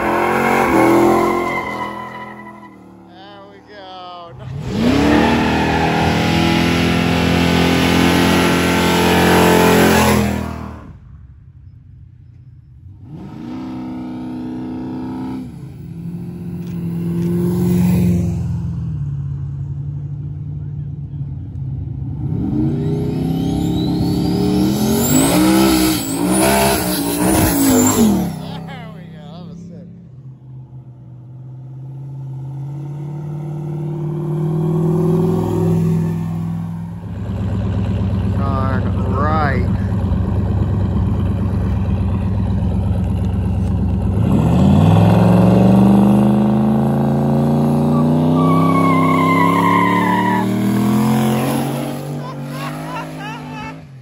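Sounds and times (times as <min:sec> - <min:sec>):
car accelerating away: 0:00.0 - 0:10.9, 0:20.9 - 0:54.0
car engines revving: 0:00.0 - 0:11.2, 0:11.9 - 0:54.0.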